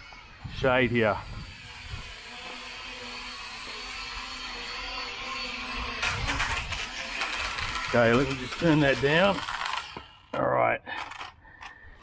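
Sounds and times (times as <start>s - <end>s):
toy drone propellers buzzing: 0.0s - 11.9s.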